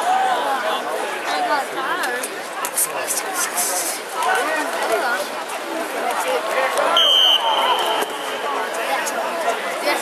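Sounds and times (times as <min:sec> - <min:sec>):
spectators chattering: 0:00.0 - 0:10.0
referee's whistle blast: 0:06.9 - 0:08.6.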